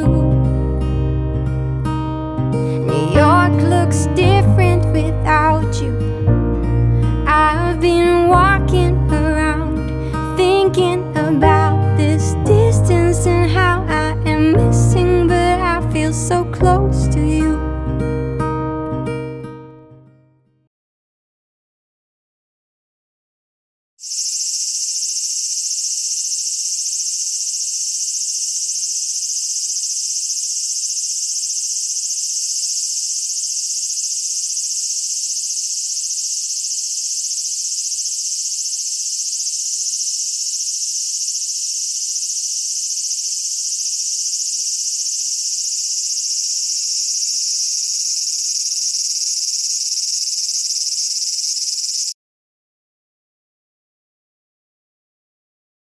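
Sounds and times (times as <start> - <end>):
cicadas chorus: 24.0 - 52.2.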